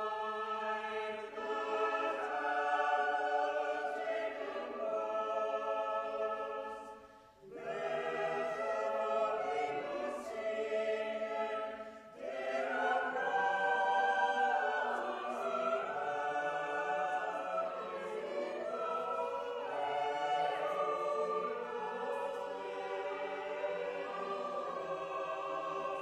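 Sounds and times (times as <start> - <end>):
choir singing a carol: 0.0 - 26.0.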